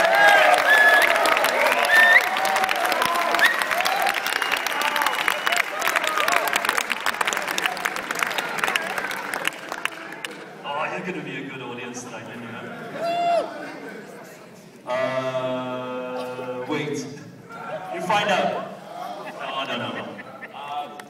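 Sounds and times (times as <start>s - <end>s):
audience applauding: 0.0s - 10.6s
whoops and shouts: 13.0s - 13.6s.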